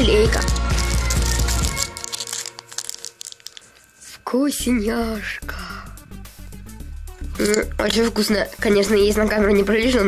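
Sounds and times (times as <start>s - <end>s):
plastic wrapper crinkling and tearing: 0.4s - 3.9s.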